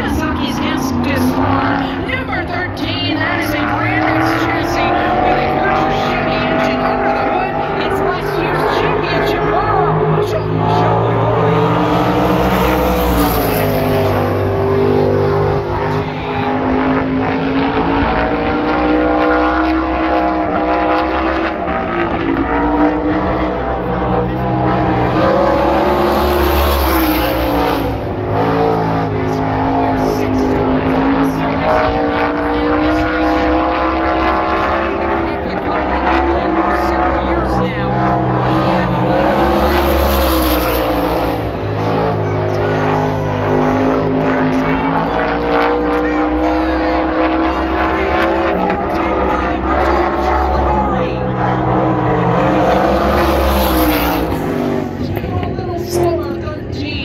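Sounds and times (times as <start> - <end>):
race car engine passing: 0.0 - 56.9.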